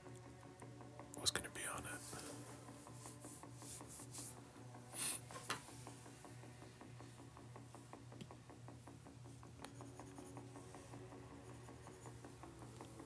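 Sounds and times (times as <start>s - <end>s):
faint steady hum: 0.0s - 13.0s
person whispering breathily: 1.3s - 2.3s.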